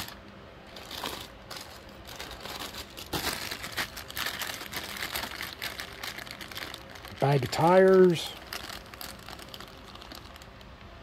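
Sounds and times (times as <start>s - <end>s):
plastic bags crinkling: 0.0s - 10.8s.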